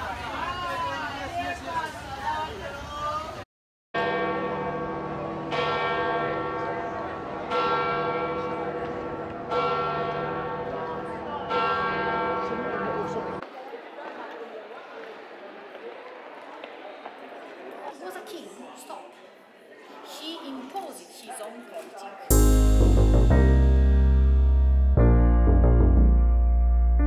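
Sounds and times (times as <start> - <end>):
church bell tolling: 4.0 - 13.4, 22.3 - 26.9.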